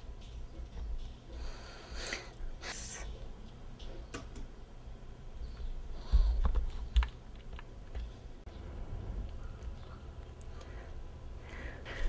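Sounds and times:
breath thumping microphone: 6.0s - 6.8s.

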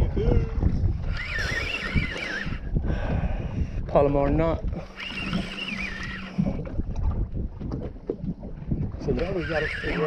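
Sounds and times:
water against boat hull: 0.0s - 10.0s
wind buffeting microphone: 0.0s - 10.0s.

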